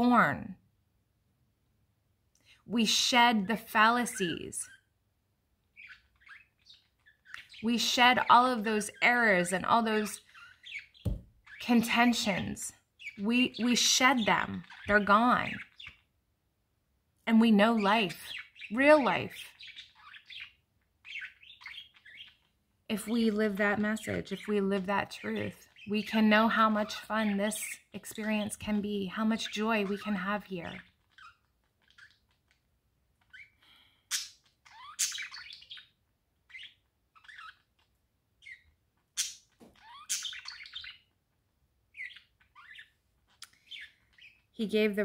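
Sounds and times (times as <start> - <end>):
bird chirping: 2.4 - 16.4, 17.3 - 45.0.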